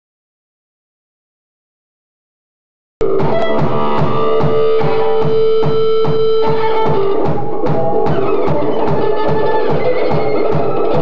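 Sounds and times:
live rock band playing: 0:03.0 - 0:11.0
steady drum beat: 0:03.0 - 0:11.0.

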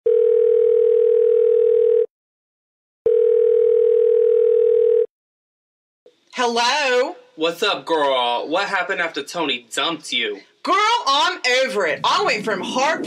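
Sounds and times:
telephone ringback tone: 0:00.1 - 0:02.1, 0:03.1 - 0:05.1.

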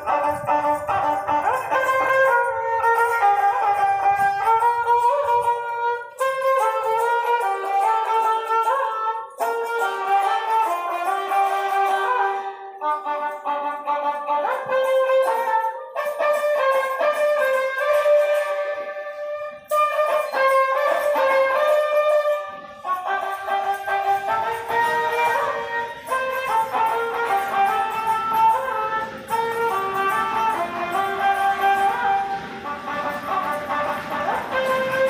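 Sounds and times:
bowed folk fiddle melody: 0:00.0 - 0:35.0.

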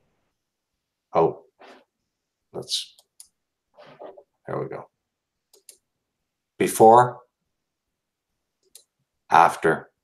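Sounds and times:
person speaking: 0:02.6 - 0:03.2, 0:03.8 - 0:04.9.

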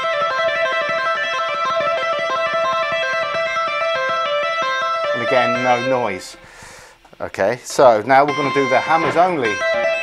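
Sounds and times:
electric guitar legato run: 0:00.0 - 0:06.5, 0:08.0 - 0:10.0.

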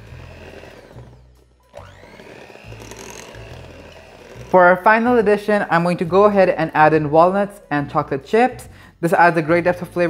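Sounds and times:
electric hand mixer running: 0:00.0 - 0:05.7.

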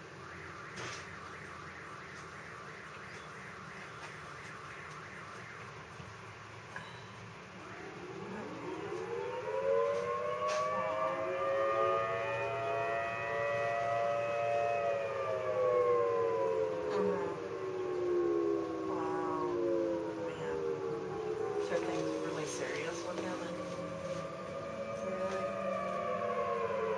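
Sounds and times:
tornado warning sirens: 0:00.0 - 0:26.9.

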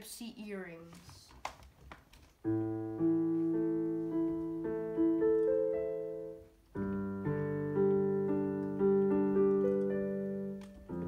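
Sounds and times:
digital piano piece: 0:02.1 - 0:11.0.

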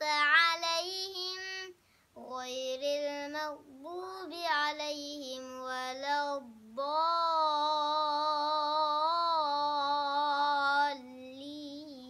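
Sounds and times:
boy chanting melodically: 0:00.0 - 0:12.0.

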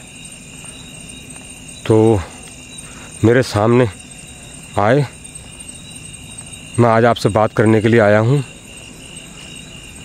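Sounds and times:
night insects chirping: 0:00.0 - 0:10.0.

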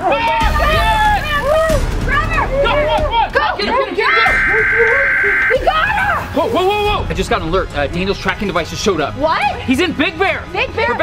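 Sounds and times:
high voices shrieking and yelling: 0:04.2 - 0:06.8.

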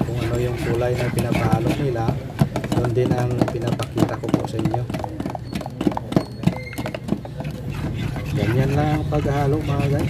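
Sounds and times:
sticks knocking in metal paint cans: 0:01.0 - 0:08.6.

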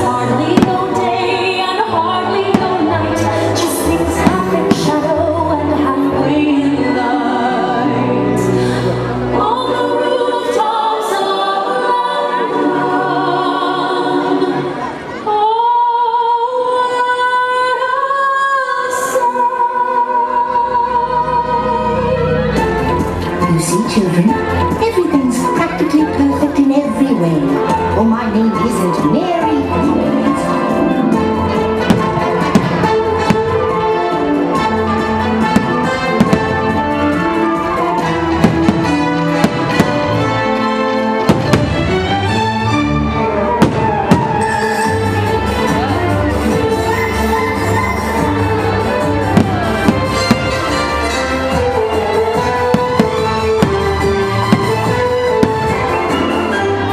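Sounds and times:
loud show music: 0:00.0 - 0:10.0, 0:20.9 - 0:56.9.

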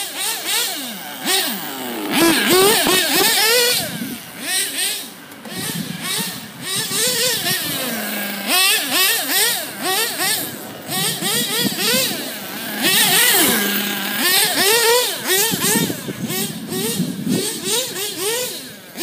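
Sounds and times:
rc car motor revving: 0:00.0 - 0:19.0.

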